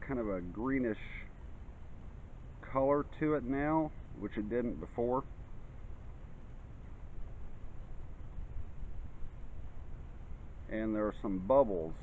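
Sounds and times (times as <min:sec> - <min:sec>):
faint hiss: 0:00.0 - 0:12.0
low uneven rumble: 0:00.0 - 0:12.0.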